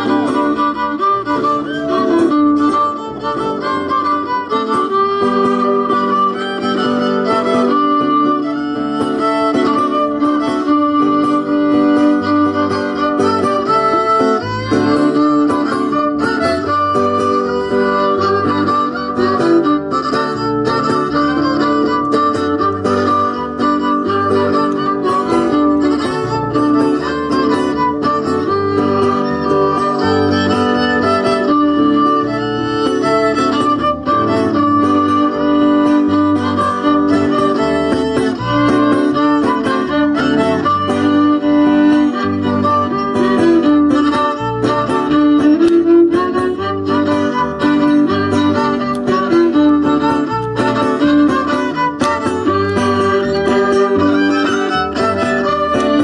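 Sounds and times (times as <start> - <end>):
strummed guitar: 0.0 - 56.0
violin melody: 0.0 - 56.0.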